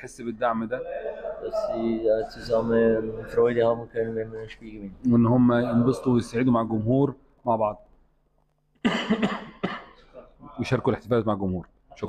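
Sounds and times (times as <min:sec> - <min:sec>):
man coughing: 0:08.8 - 0:10.3.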